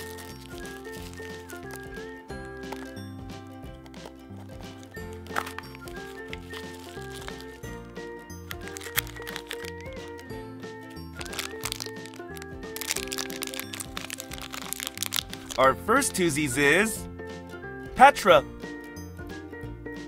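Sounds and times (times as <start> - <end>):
foil packet crinkling: 0.0 - 3.0, 3.8 - 7.6, 8.4 - 10.3, 11.1 - 15.6
background music: 0.0 - 20.0
cardboard box being opened: 3.8 - 7.6.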